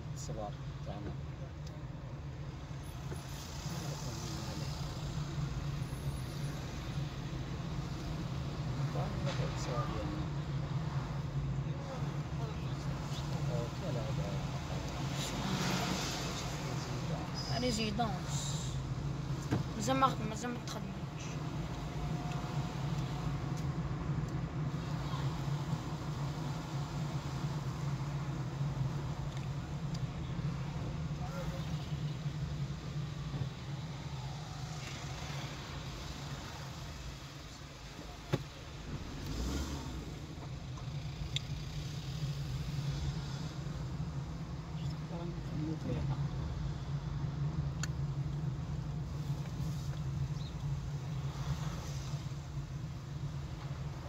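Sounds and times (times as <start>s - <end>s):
car engine drone: 0.0s - 54.0s
road noise inside car: 0.0s - 54.0s.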